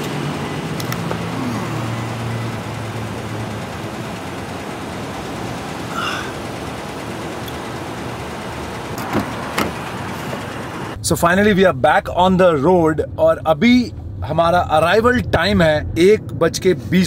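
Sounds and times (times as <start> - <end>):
low engine hum: 0.0 - 17.0
traffic noise: 0.0 - 17.0
car door clicking open: 9.0 - 10.4.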